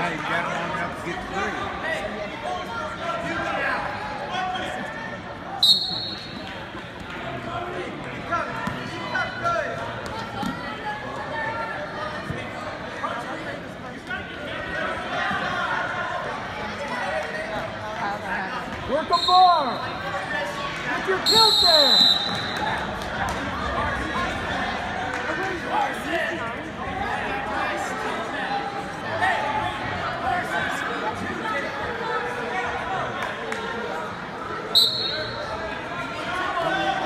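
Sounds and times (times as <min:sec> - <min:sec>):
referee's whistle blast: 0:05.6 - 0:06.4, 0:21.2 - 0:22.6, 0:34.8 - 0:35.4.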